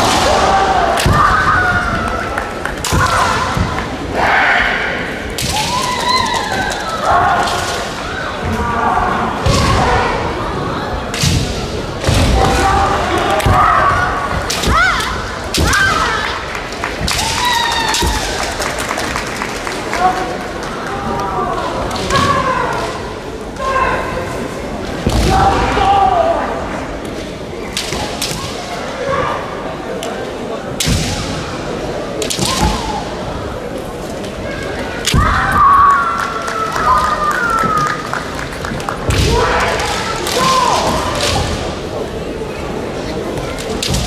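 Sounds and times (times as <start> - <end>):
large hall background noise: 0.0 - 44.0
bamboo swords striking: 11.1 - 16.1.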